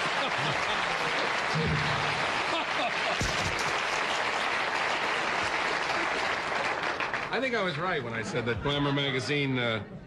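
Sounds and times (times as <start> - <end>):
audience applauding: 0.0 - 8.3.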